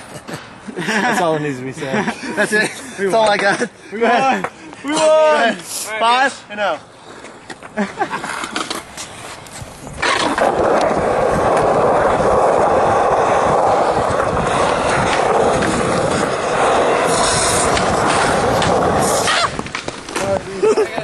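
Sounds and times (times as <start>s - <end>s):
skateboard wheels rolling on concrete: 0.0s - 21.0s.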